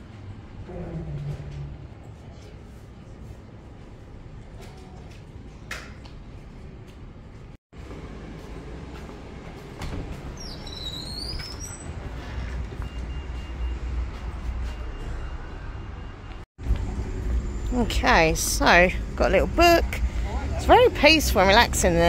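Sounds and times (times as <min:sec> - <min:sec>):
low rumble of traffic: 0:00.0 - 0:22.0.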